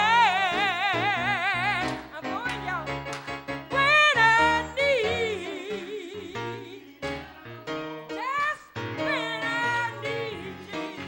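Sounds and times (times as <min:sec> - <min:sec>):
woman singing gospel: 0:00.0 - 0:11.0.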